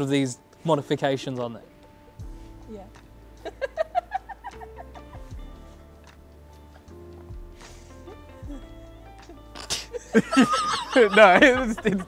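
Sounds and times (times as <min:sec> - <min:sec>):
soft background music: 0:00.0 - 0:12.0
woman laughing: 0:03.4 - 0:05.4, 0:08.2 - 0:12.0.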